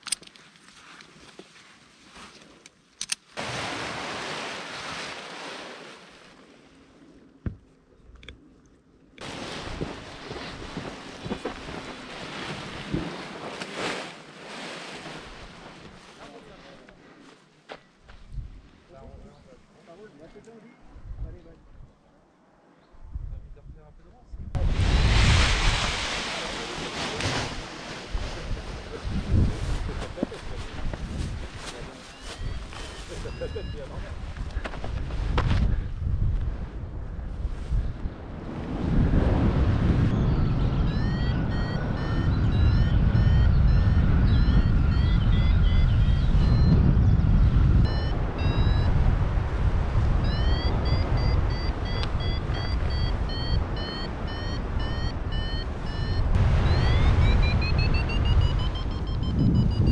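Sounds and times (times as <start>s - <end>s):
wind buffeting microphone: 23.0s - 59.9s
variometer beeping: 40.1s - 47.2s, 47.8s - 49.0s, 50.2s - 59.9s.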